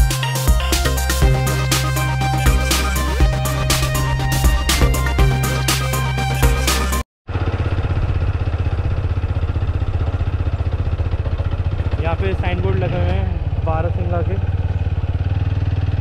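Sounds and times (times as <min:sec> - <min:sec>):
background music: 0:00.0 - 0:07.0
motorcycle engine running: 0:00.0 - 0:16.0.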